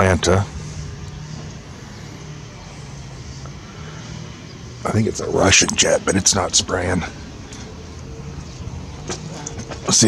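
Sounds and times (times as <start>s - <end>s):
distant engines rumbling: 0.0s - 10.0s
low hum: 0.0s - 10.0s.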